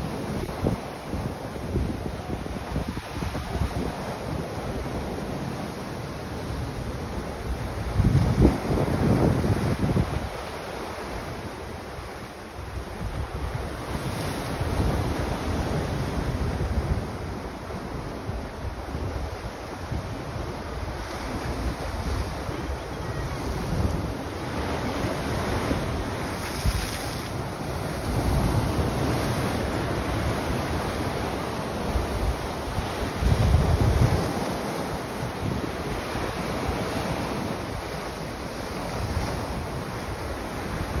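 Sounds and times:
wind buffeting microphone: 0:06.6 - 0:11.5, 0:12.6 - 0:41.0.

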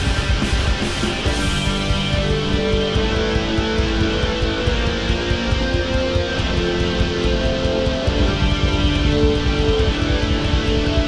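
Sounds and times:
black metal instrumental: 0:00.0 - 0:11.0.

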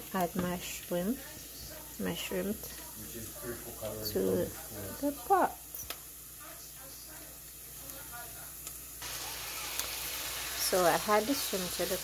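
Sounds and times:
shrimp sizzling in a pot: 0:00.0 - 0:12.0.

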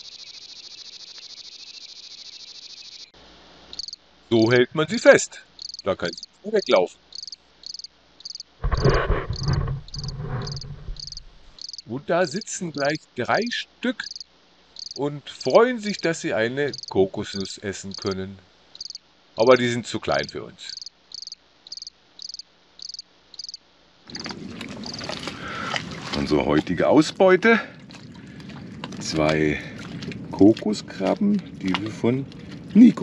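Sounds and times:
night insects chirping: 0:00.0 - 0:33.0
loud rough low noise: 0:08.6 - 0:11.6.

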